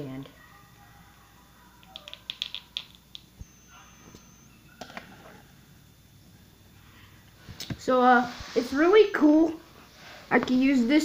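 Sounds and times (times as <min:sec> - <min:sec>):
plastic toy clicks: 0:01.8 - 0:03.2
toy knocking on wooden floor: 0:01.9 - 0:03.0.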